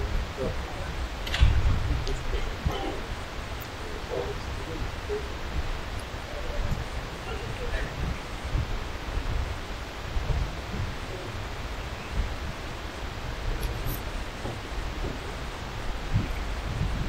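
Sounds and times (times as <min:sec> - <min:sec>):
low thumps: 0:00.0 - 0:11.3, 0:12.2 - 0:17.0.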